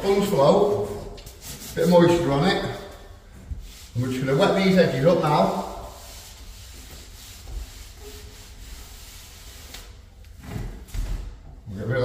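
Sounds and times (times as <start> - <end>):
sponge float scrubbing plaster: 3.6 - 10.0.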